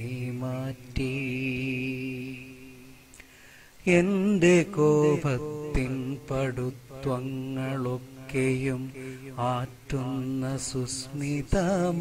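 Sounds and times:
man singing slow chant: 0.0 - 12.0.

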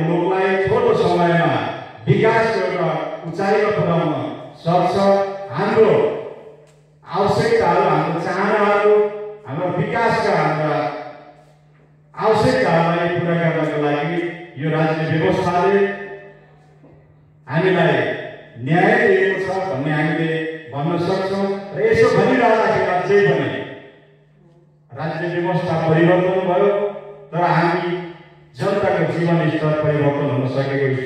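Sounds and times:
man speaking into a microphone: 0.0 - 16.4, 17.3 - 24.3, 24.9 - 31.0.

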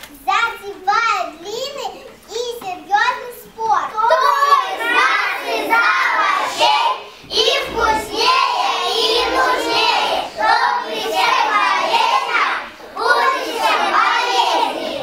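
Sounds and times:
children reciting in unison: 0.6 - 15.0.

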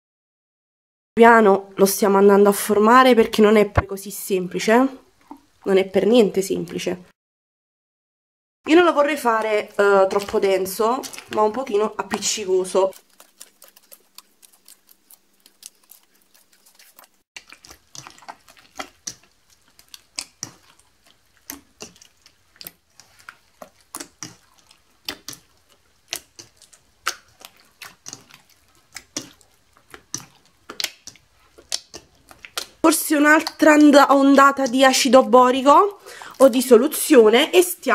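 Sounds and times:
slime squelching and popping: 9.3 - 35.2.

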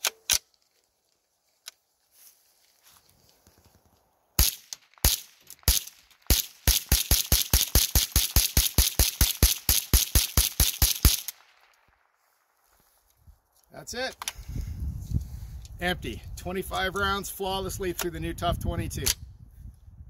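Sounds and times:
rifle shots: 4.4 - 12.1.

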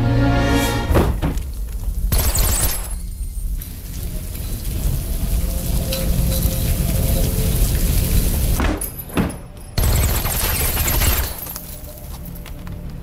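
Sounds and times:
low rumble: 0.0 - 8.6
sprinklers spraying water: 1.5 - 9.1.

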